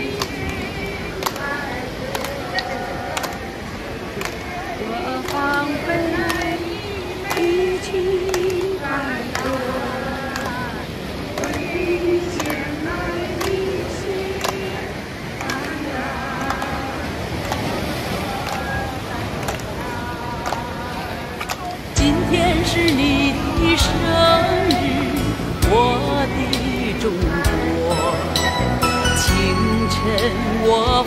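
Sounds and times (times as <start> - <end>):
surf breaking on rocks: 0.0 - 27.9.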